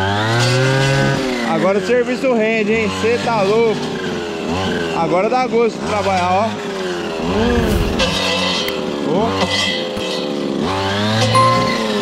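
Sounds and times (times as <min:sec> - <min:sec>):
brushcutter engine at high revs: 0:00.0 - 0:07.5, 0:08.1 - 0:11.3
brushcutter cutting dense brush: 0:05.8 - 0:11.3.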